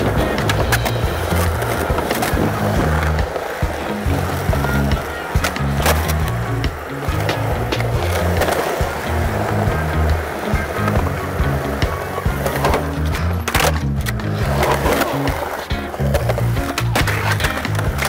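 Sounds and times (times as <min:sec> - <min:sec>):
music with steady bass line: 0:00.0 - 0:18.0
skateboard clacks: 0:00.0 - 0:18.0
skateboard wheels rolling on concrete: 0:00.0 - 0:18.0.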